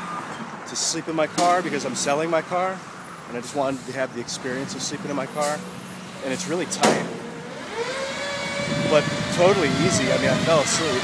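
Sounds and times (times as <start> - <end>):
faint street noise: 0.0 - 11.0
passing vehicle engine whine: 0.0 - 11.0.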